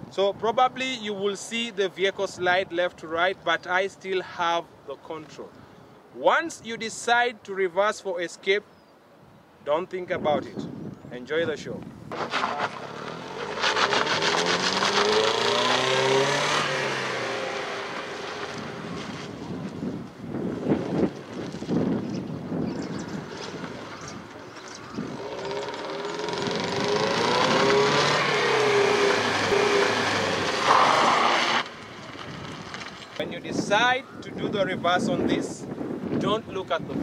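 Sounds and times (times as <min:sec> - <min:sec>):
car engine revving: 0:12.1 - 0:19.4, 0:23.1 - 0:32.8
tyres sliding on gravel: 0:12.1 - 0:19.8, 0:23.3 - 0:33.3.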